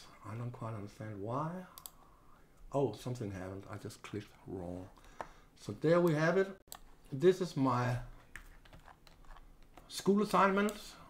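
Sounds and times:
keyboard and mouse clicking: 1.8 - 2.0.

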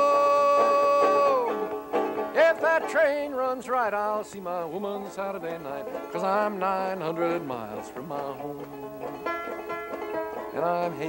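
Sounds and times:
man singing high wordless note: 0.0 - 1.7, 2.3 - 9.3, 10.5 - 11.0
plucked string notes: 0.0 - 11.0.

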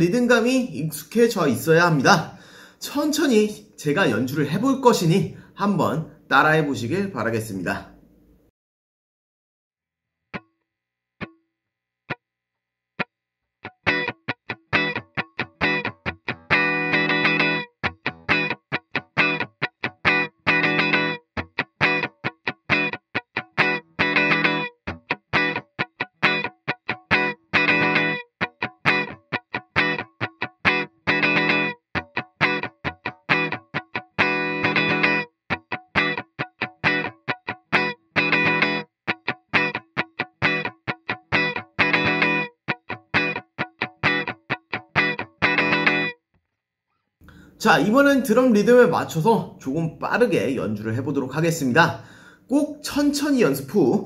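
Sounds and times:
electric guitar funk rhythm: 13.6 - 46.2.

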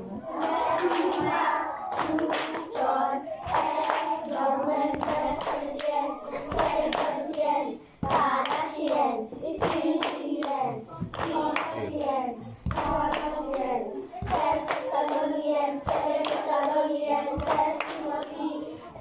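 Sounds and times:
children singing: 0.0 - 19.0
hands clapping in rhythm: 0.3 - 18.6.

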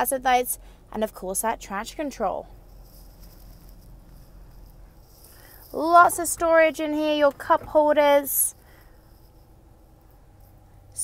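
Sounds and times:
car engine idling low hum: 0.5 - 11.0.

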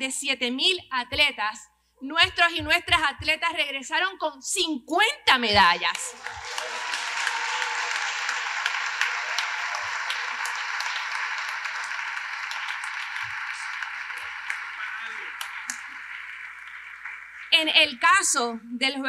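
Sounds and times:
audience applauding: 5.8 - 18.4.

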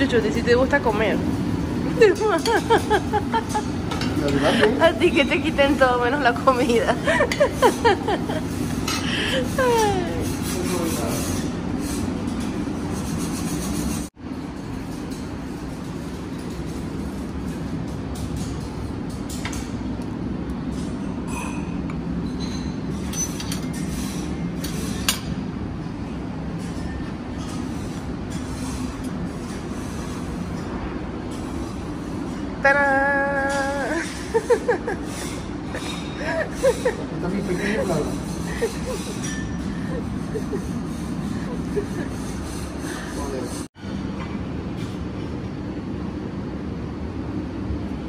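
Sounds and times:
ventilation hum: 0.0 - 48.0
dishes and utensils clinking: 1.8 - 13.5, 14.5 - 20.0, 20.6 - 32.6, 33.3 - 45.0.

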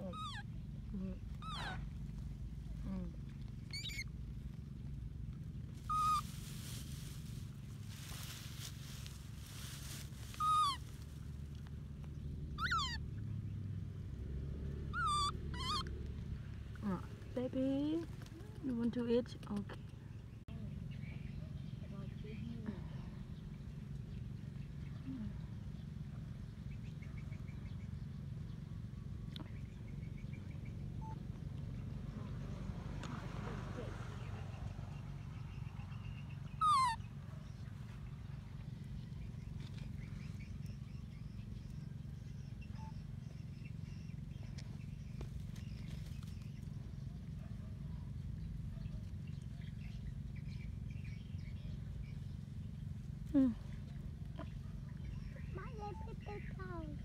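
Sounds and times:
baby monkey cooing: 0.0 - 2.2, 2.8 - 4.2, 5.8 - 6.4, 10.3 - 11.2, 12.6 - 13.0, 14.9 - 16.0, 36.4 - 37.2
low steady hum: 0.0 - 57.0.

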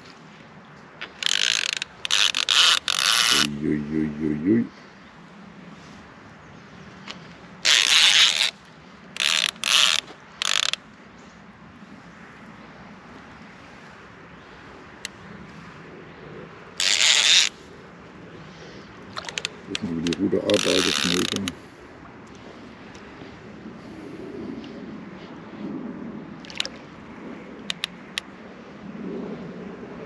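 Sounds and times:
fishing reel drag ratcheting: 1.0 - 3.5, 7.6 - 8.6, 9.2 - 10.8, 16.8 - 17.6, 19.1 - 21.6, 27.7 - 28.3.

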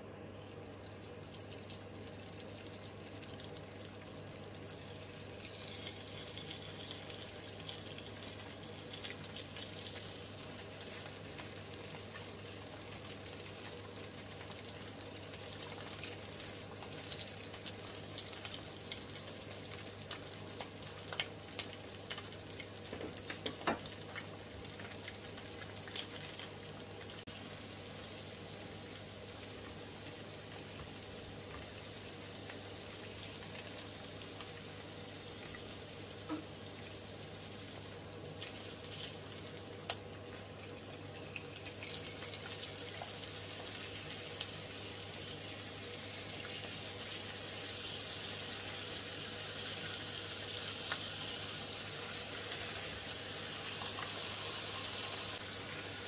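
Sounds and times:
fish sizzling in oil: 0.0 - 56.0.

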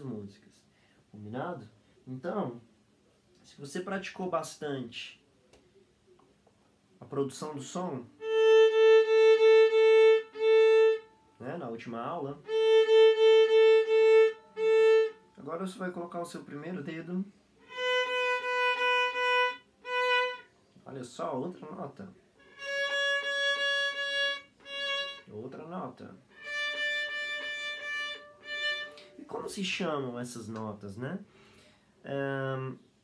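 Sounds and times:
violin bowed on steady note: 7.6 - 15.8, 17.6 - 20.5, 22.4 - 30.0.

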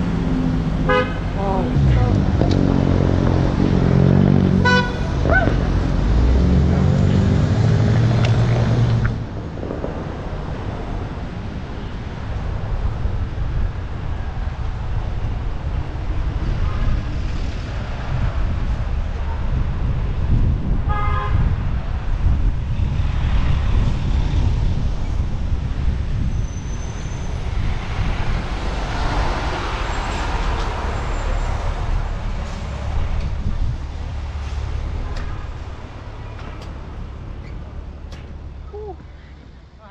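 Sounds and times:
city traffic: 0.0 - 39.9
wind rumbling on microphone: 0.0 - 39.9
vehicle horn toot: 0.9 - 1.2, 4.6 - 5.1, 20.9 - 21.5.

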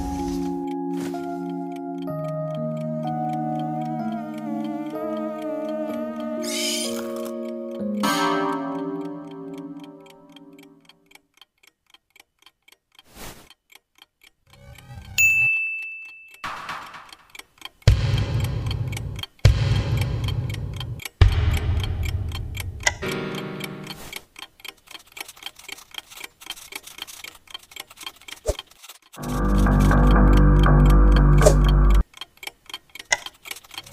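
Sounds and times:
short melody: 0.0 - 10.6, 29.2 - 32.0
wall clock ticking: 0.0 - 15.2, 16.4 - 33.9
high beep: 15.2 - 16.5
loud low rumbles: 17.9 - 23.0.

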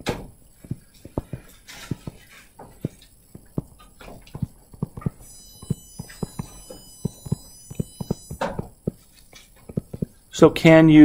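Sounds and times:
stylus tapping on touchscreen: 0.6 - 10.2.

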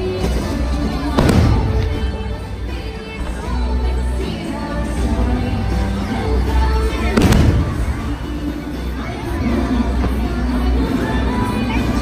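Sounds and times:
show music: 0.0 - 12.0.

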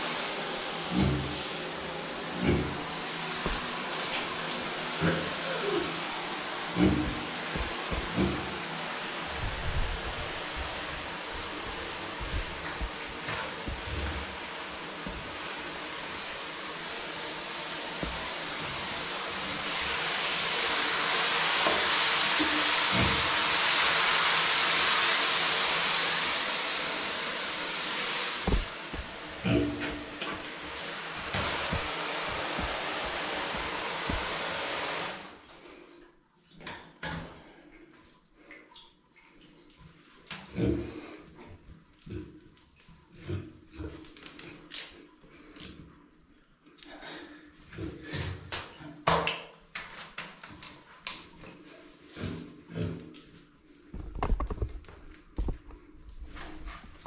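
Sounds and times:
shower head spraying water: 0.0 - 35.3.

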